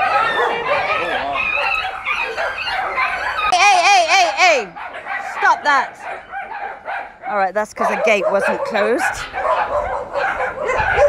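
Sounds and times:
dogs yipping and whining: 0:00.0 - 0:03.6, 0:04.6 - 0:11.0.

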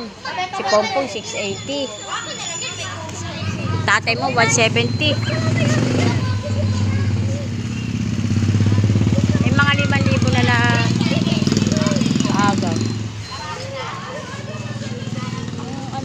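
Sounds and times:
people calling out: 0:00.0 - 0:16.0
small engine running: 0:03.4 - 0:13.1.

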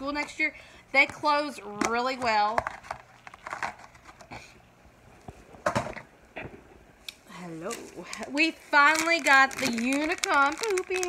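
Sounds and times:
rustling and handling noises: 0:01.0 - 0:11.0.

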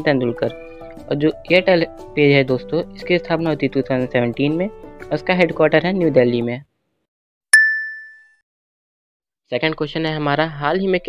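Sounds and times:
ding sound effect: 0:07.6 - 0:08.3.

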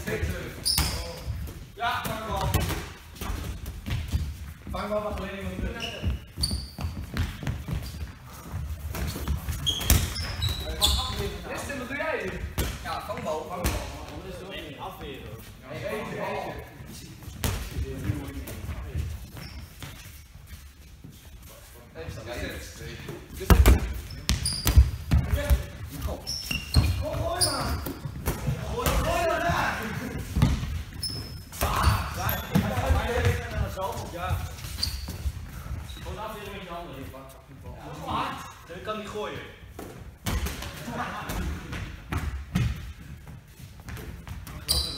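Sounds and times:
footsteps on sports hall floor: 0:00.0 - 0:37.7, 0:41.1 - 0:44.9
sneaker squeaks: 0:00.3 - 0:01.7, 0:03.2 - 0:11.8, 0:16.8 - 0:21.6, 0:23.4 - 0:28.7, 0:30.3 - 0:36.5, 0:42.6 - 0:44.9.

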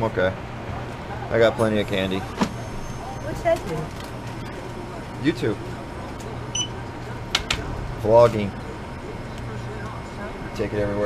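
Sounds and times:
steady low hum: 0:00.0 - 0:11.0
register electronic beep: 0:06.5 - 0:06.8.

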